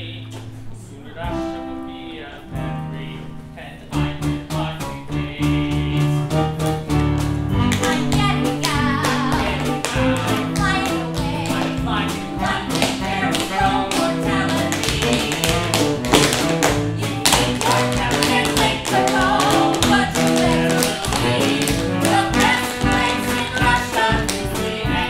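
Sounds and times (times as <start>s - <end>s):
music with steady bass line: 3.9s - 25.0s
tap shoes striking stage: 7.6s - 24.8s.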